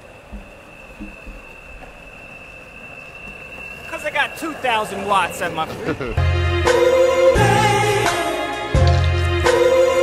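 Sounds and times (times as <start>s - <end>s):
wheels rumbling on asphalt: 0.0s - 6.2s.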